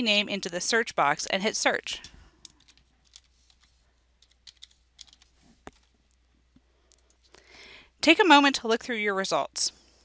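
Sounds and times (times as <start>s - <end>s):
faint keyboard and mouse clicks: 2.0s - 7.3s.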